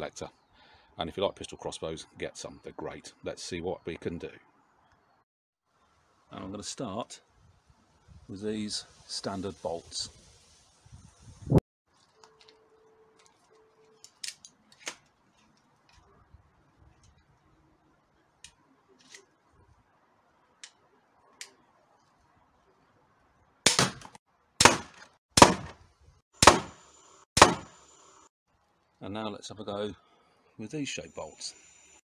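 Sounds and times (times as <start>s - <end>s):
crossbow shot sharp crack: 23.7s - 25.8s, 26.4s - 26.8s, 27.4s - 27.8s.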